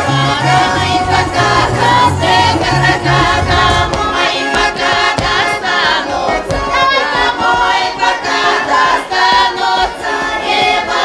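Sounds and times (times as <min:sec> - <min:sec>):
accordion: 0:00.0 - 0:11.0
women's choir singing: 0:00.0 - 0:11.0.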